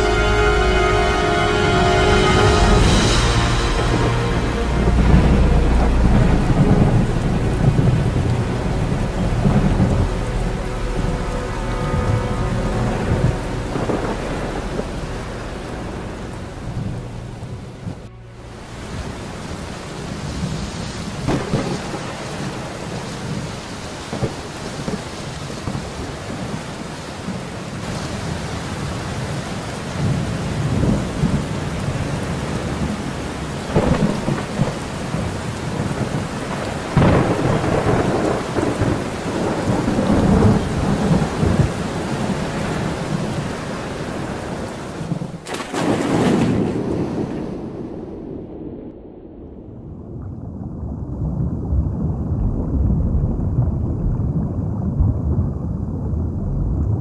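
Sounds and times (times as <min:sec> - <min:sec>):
steady rain: 0:00.0 - 0:57.0
rolls of thunder: 0:02.5 - 0:18.1, 0:18.7 - 0:57.0.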